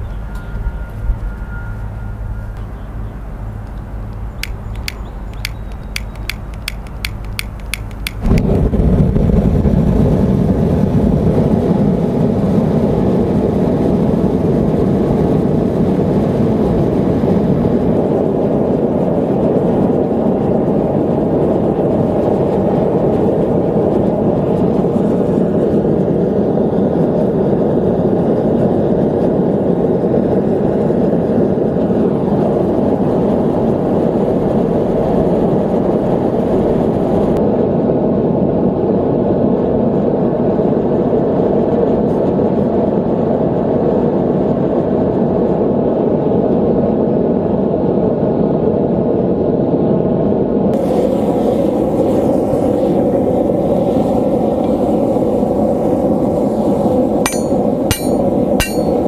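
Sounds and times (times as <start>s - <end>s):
gas forge burner hissing: 50.8s - 59.0s.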